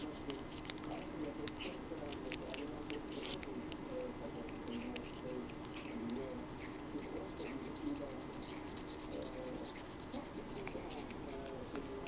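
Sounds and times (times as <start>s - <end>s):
toothbrush scrubbing cat's teeth: 0.0s - 12.0s.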